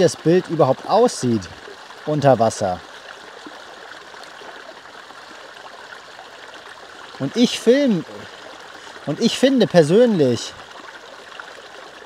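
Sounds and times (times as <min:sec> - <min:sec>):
stream flowing over stones: 0:00.0 - 0:12.0.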